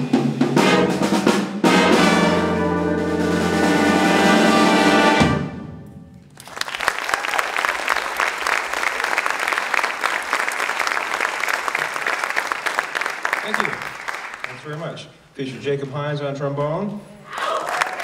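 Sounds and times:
jazz band playing: 0.0 - 6.4
audience applause: 6.4 - 14.8, 17.3 - 18.0.

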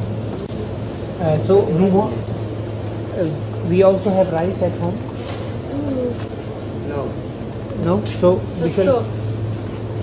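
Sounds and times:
shop equipment hum: 0.0 - 10.0.

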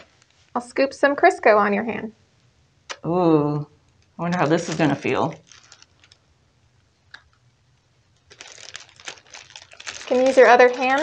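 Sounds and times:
plastic bag crinkling: 4.0 - 6.4, 8.2 - 11.0.

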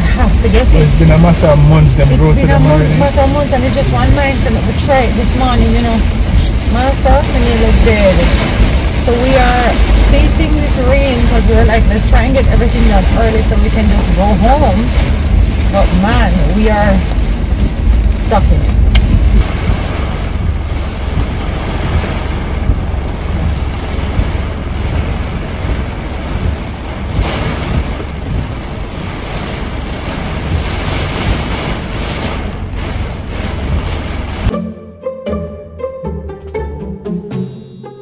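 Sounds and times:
heavy rain on a car roof: 0.0 - 34.5
music with distinct notes: 34.5 - 38.0.

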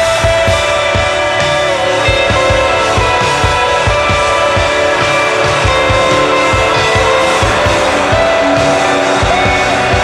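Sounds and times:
drum kit beat: 0.0 - 10.0
rock band playing: 0.0 - 10.0.

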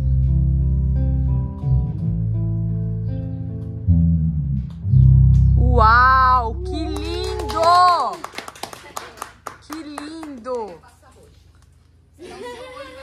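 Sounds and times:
guitars holding low chord: 0.0 - 7.7
person calling out: 5.6 - 8.2
scattered hand claps: 6.8 - 11.7.

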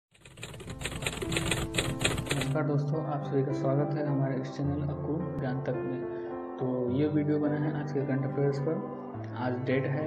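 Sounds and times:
fast clicking rhythm: 0.1 - 2.6
intro music: 0.4 - 2.6.

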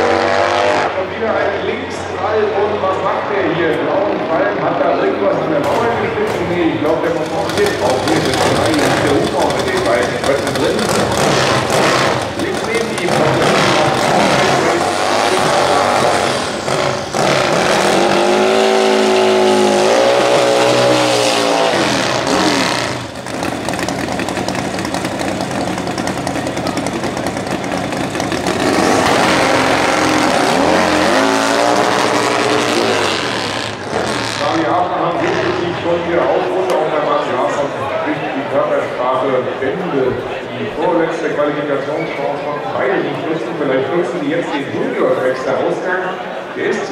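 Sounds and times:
motorcycle engines revving: 0.0 - 45.4.

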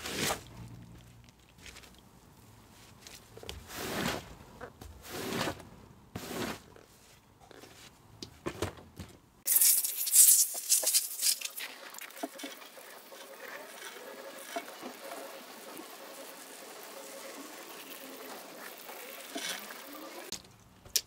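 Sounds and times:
wet rug being scrubbed: 3.6 - 4.3, 5.0 - 5.6, 6.2 - 6.7.

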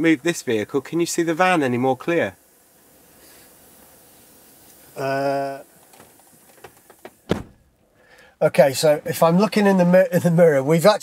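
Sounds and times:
truck door thumping shut: 5.9 - 7.7.

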